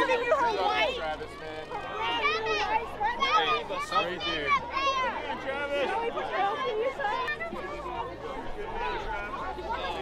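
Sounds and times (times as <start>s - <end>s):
overlapping crowd chatter: 0.0s - 10.0s.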